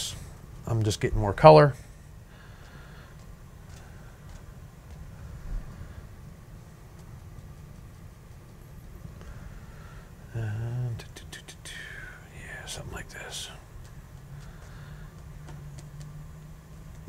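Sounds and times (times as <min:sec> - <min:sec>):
low room hum: 0:00.0 - 0:17.0.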